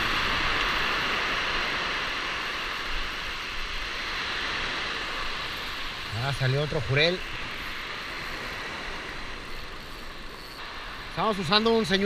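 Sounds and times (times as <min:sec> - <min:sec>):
surf washing on beach: 0:00.0 - 0:12.0.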